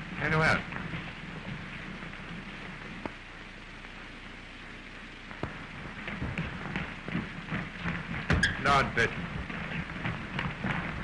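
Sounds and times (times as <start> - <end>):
film soundtrack hiss: 0.0 - 11.0.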